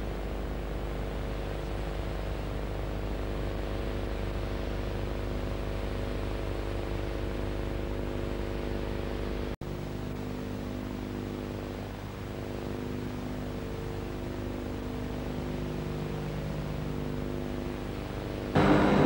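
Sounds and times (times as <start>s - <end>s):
electrical mains hum: 0.0s - 19.0s.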